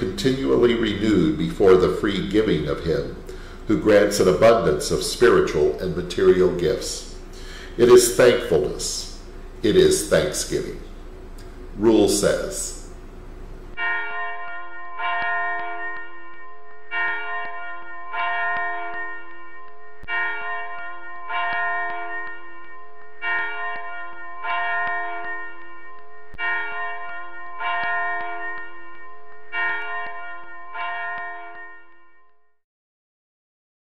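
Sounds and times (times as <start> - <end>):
bells ringing: 13.8 - 32.3.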